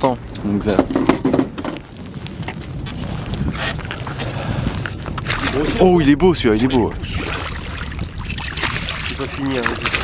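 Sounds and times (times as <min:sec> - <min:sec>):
water moving around boat: 0:00.0 - 0:10.0
wind on microphone: 0:00.0 - 0:10.0.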